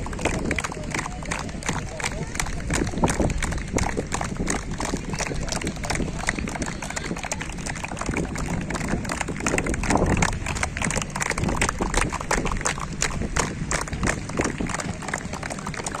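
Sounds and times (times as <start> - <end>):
group of people clapping: 0.0 - 16.0.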